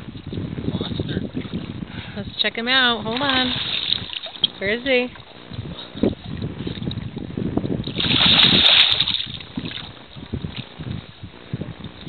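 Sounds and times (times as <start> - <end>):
wind on microphone: 0.0 - 12.0
water slapping against hull: 2.9 - 7.2, 7.8 - 10.8
fish splashing at water surface: 7.9 - 9.9.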